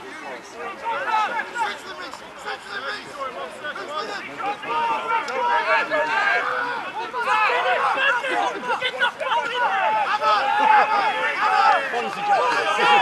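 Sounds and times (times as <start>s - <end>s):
crowd chatter: 0.0s - 13.0s
men shouting: 0.6s - 13.0s.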